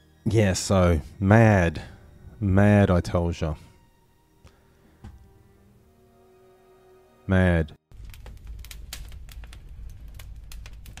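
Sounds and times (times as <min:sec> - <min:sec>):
fire crackling: 0:07.9 - 0:11.0.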